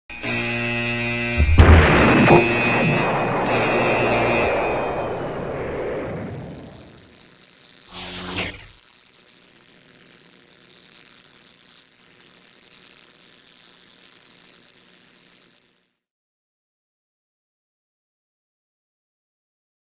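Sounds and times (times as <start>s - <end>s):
loud noisy rumble: 1.4s - 6.3s
short whoosh: 1.4s - 7.2s.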